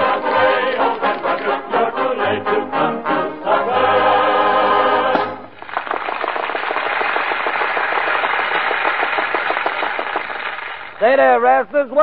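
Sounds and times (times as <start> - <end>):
audience applause: 5.4 - 11.0.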